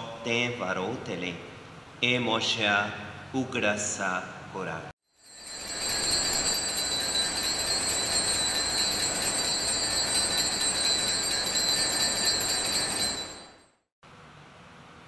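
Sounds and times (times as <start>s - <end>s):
altar bells ringing: 5.1s - 13.8s.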